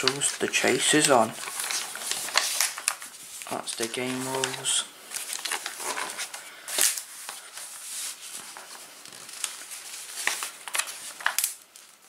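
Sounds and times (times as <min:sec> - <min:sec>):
glossy paper pages rustling: 0:00.0 - 0:12.0.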